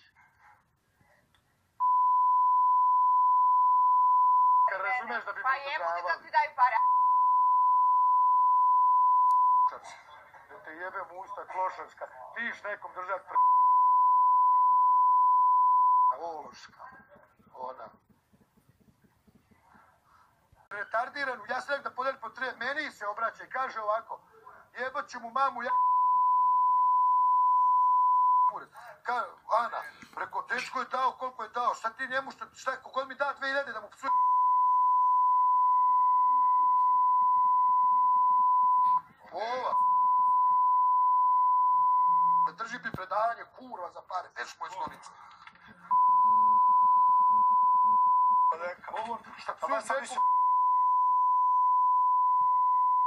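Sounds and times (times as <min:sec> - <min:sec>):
censor bleep: 0:01.8 - 0:04.7, 0:06.8 - 0:09.8, 0:13.4 - 0:16.2, 0:25.7 - 0:28.6, 0:34.1 - 0:39.0, 0:39.7 - 0:42.6, 0:45.9 - 0:48.6, 0:50.2 - 0:53.0.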